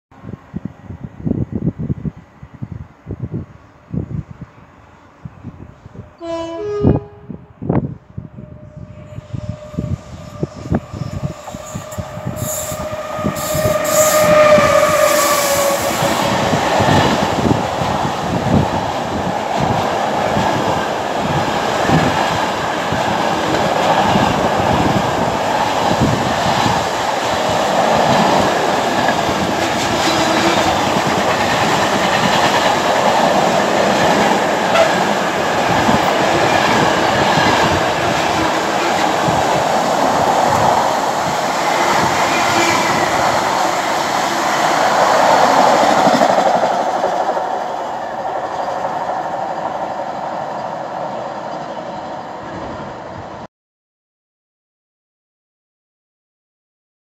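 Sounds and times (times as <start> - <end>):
train wheels rumbling on rails: 5.3 - 53.3.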